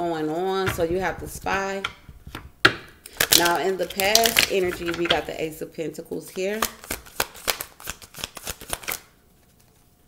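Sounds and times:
cards being shuffled: 6.5s - 9.8s.

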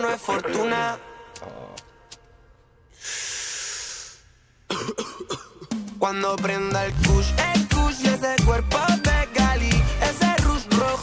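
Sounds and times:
song with vocals: 0.0s - 2.4s, 5.6s - 11.0s
loud hiss: 3.0s - 4.4s.

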